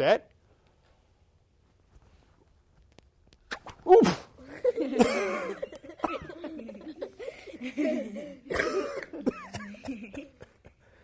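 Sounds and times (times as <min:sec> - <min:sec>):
man and children laughing: 0:04.4 - 0:10.8
man coughing: 0:05.0 - 0:06.4, 0:08.5 - 0:10.3.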